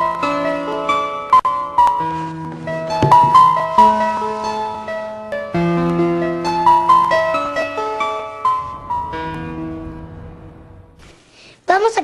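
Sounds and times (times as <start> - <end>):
slow piano music: 0.0 - 11.2.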